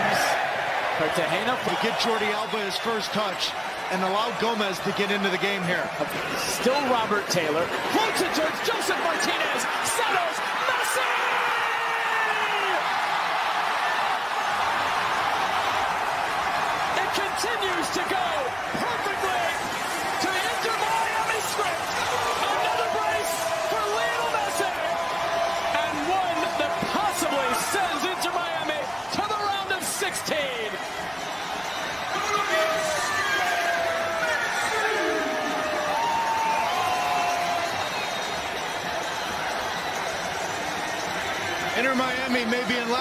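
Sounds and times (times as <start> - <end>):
stadium crowd roaring: 0.0 - 43.0
whistles: 37.4 - 40.1.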